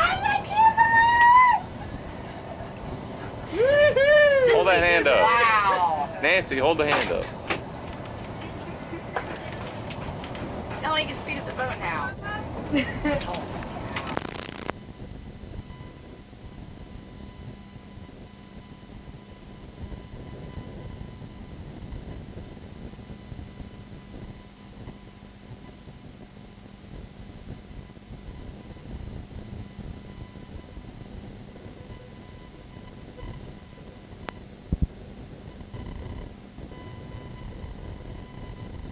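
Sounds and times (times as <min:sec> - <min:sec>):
faint steady hum: 0:00.0 - 0:38.9
low rumbling noise: 0:05.8 - 0:17.0
videotape low rumble: 0:05.8 - 0:38.9
burst of tape noise: 0:06.2 - 0:15.0.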